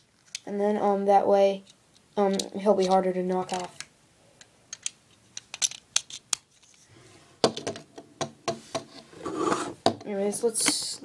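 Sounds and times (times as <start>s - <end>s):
plastic bricks clicking: 4.7s - 6.7s.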